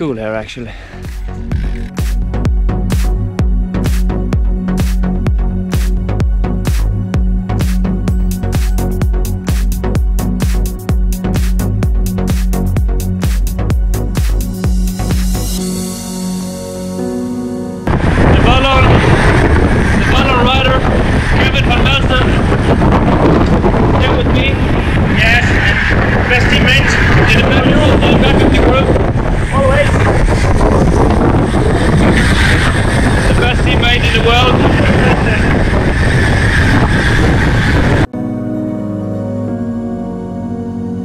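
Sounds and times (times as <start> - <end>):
man talking: 0.0 - 0.8, 18.3 - 19.0, 20.0 - 22.4, 23.9 - 30.1, 33.2 - 35.5
wind roar on microphone: 0.0 - 15.7, 17.8 - 38.1
background music: 0.0 - 24.3, 38.0 - 41.0.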